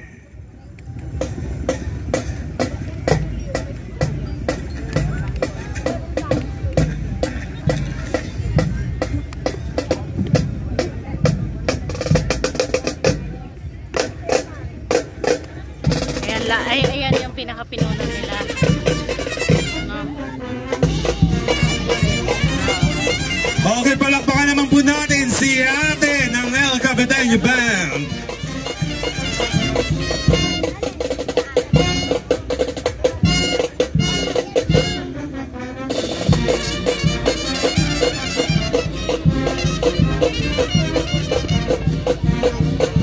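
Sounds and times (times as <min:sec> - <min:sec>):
pitched band instruments: 0:01.2 - 0:13.3, 0:14.0 - 0:43.0
snare and bass drum cadence: 0:14.0 - 0:19.9, 0:20.7 - 0:35.1, 0:35.9 - 0:43.0.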